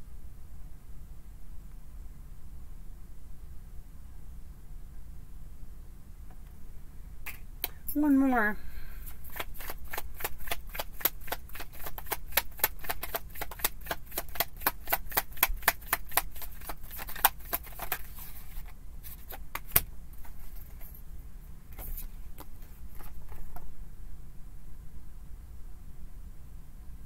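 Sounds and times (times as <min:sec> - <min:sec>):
cards being shuffled: 0:09.0 - 0:21.0, 0:21.7 - 0:23.7.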